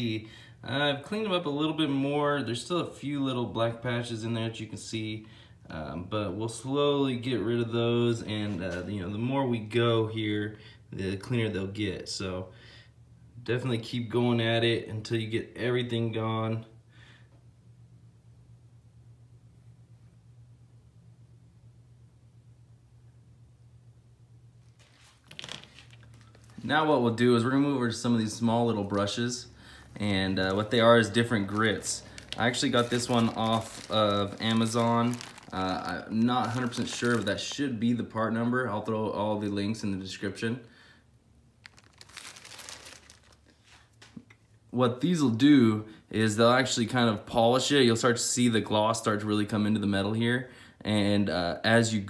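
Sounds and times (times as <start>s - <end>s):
faint low hum: 0.0s - 52.0s
plastic zip bag crinkling: 24.7s - 27.0s, 28.3s - 37.8s, 41.6s - 44.0s.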